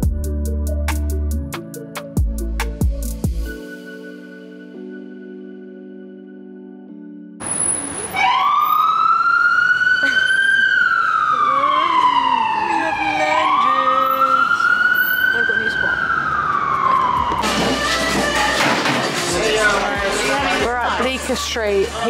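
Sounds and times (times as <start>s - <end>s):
emergency vehicle siren wailing: 7.4s - 20.6s.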